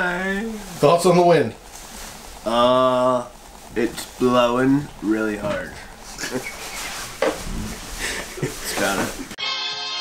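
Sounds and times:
man laughing and snorting: 6.1s - 9.3s.

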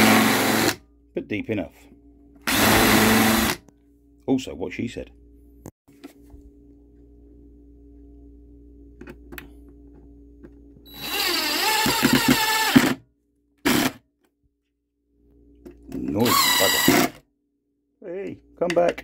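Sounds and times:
drill driving screw into wood: 0.0s - 0.8s, 2.4s - 3.6s, 10.9s - 13.0s, 13.6s - 14.0s, 16.2s - 17.2s
faint steady hum: 0.3s - 11.8s.

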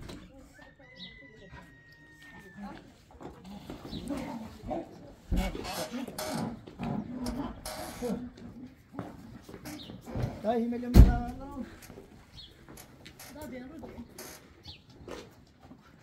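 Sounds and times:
voices talking: 0.0s - 15.0s.

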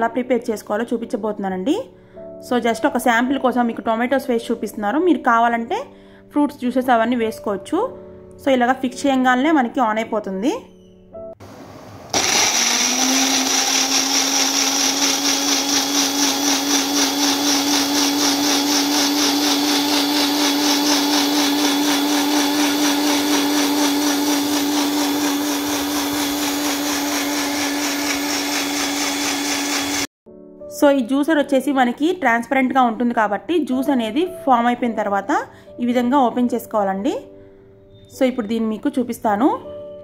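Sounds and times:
blender motor whine: 11.4s - 30.1s.

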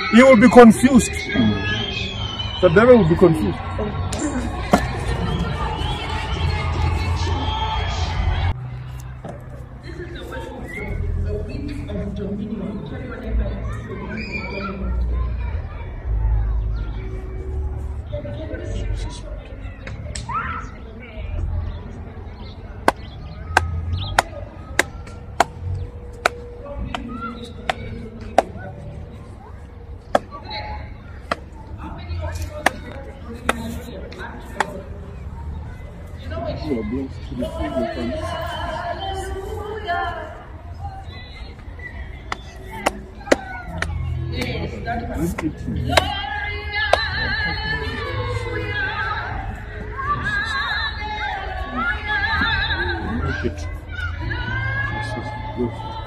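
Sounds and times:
faint indistinct voices: 0.0s - 56.0s.

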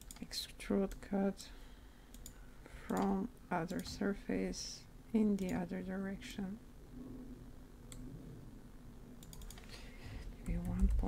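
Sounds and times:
computer keystrokes: 0.0s - 0.3s, 2.1s - 3.1s, 9.2s - 9.7s, 10.4s - 11.0s.

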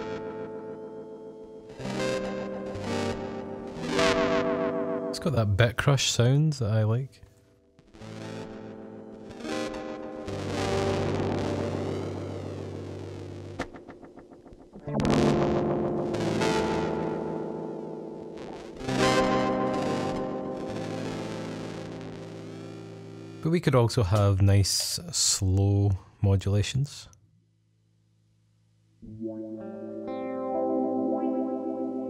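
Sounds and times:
gritty electric guitar chords: 0.0s - 5.4s, 7.8s - 24.3s, 29.0s - 32.0s.

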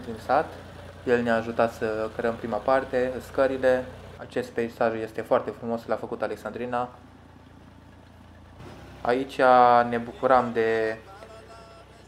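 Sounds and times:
tractor engine running: 0.0s - 12.0s.

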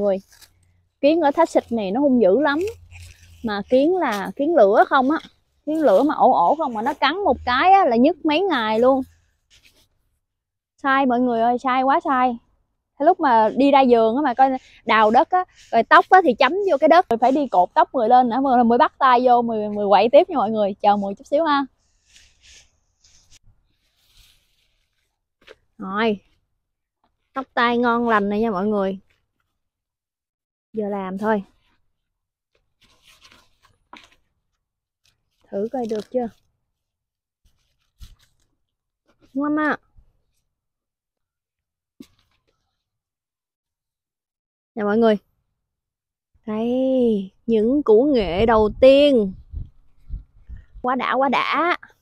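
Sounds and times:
woman speaking: 0.0s - 0.2s, 1.0s - 2.8s, 3.4s - 9.0s, 10.8s - 12.4s, 13.0s - 21.7s, 25.8s - 26.2s, 27.4s - 29.0s, 30.8s - 31.4s, 35.5s - 36.3s, 39.4s - 39.8s, 44.8s - 45.2s, 46.5s - 49.4s, 50.8s - 51.9s
hands digging in soil: 0.0s - 9.9s, 13.3s - 18.6s, 21.1s - 25.6s
faint scratchy rustles: 8.4s - 10.2s, 21.0s - 26.5s, 32.6s - 40.5s.

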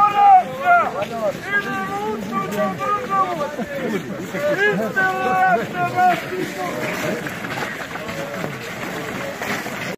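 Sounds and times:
voices talking over each other: 0.0s - 9.9s.

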